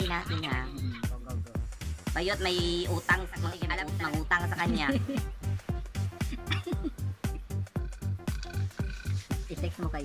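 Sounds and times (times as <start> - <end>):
music with steady bass beat: 0.0 - 10.0.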